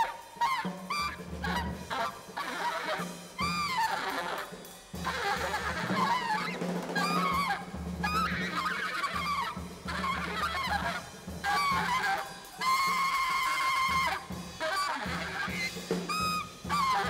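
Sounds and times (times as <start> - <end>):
free jazz saxophone solo: 0.0 - 17.0.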